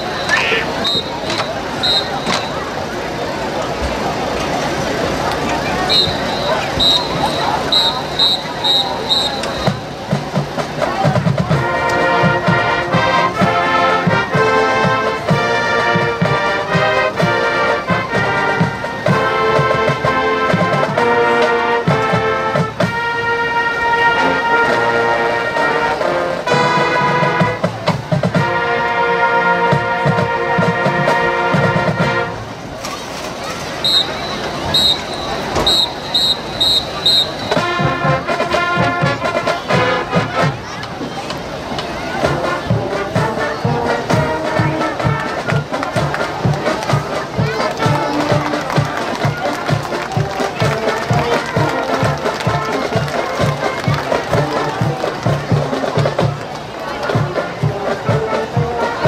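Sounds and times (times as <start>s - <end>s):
brass chords: 5.7s - 10.1s, 11.4s - 32.6s, 33.8s - 40.6s, 42.2s - 55.8s
steady drum beat: 6.1s - 16.9s.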